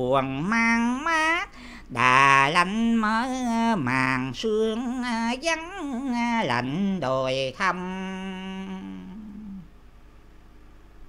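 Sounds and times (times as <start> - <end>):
man singing low note: 0.0 - 9.7
faint steady background hum: 0.0 - 11.0.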